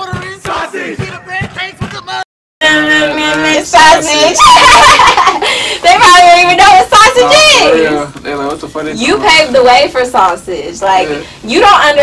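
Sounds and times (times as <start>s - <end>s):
man shouting a rap: 0.0s - 2.2s.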